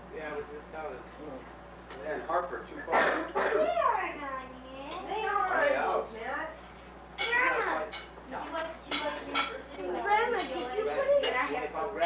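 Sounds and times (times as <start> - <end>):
low table conversation: 0.0 - 12.0
cutlery clinking against plates: 7.2 - 9.6, 10.3 - 11.7.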